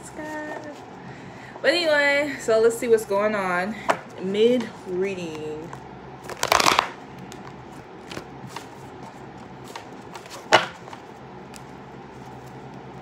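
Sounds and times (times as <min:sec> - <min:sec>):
cards riffling: 0:06.2 - 0:13.0
cards sliding and tapping: 0:06.3 - 0:12.8.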